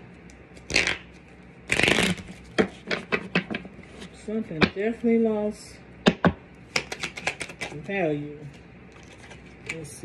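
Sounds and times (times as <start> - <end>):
cards being riffle shuffled: 0.6 - 3.6, 6.7 - 7.8, 9.0 - 9.8.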